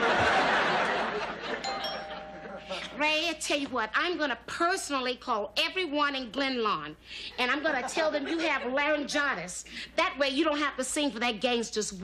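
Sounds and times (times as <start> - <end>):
studio audience laughter: 0.0 - 2.9
two-tone doorbell chime: 1.6 - 2.9.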